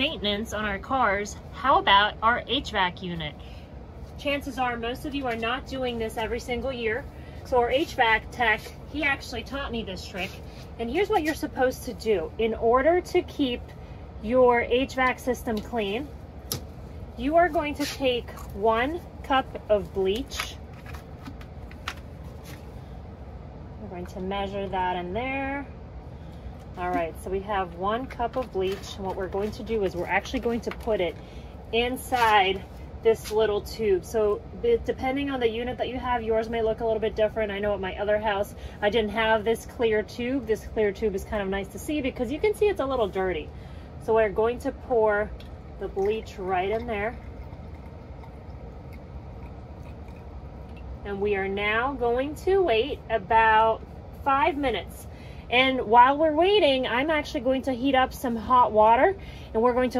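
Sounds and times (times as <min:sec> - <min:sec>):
steady low hum: 0:00.0 - 0:59.9
liquid trickling into a tube: 0:45.3 - 0:51.0.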